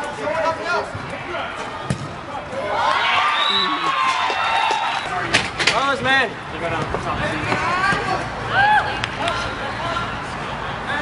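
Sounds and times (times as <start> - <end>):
ball being kicked: 1.8 - 2.2.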